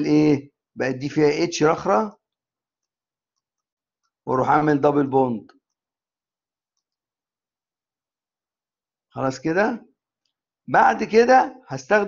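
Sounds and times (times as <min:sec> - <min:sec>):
man's voice: 0:00.0 - 0:02.2, 0:10.7 - 0:12.0.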